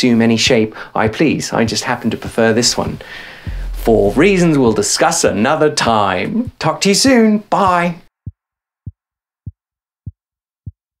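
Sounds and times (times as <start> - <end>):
low thumps dropping in pitch: 3.4 - 5.4.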